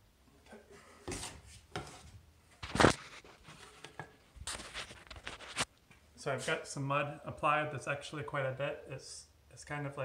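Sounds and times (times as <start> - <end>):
phone handling rubs and bumps: 0.5 - 5.7.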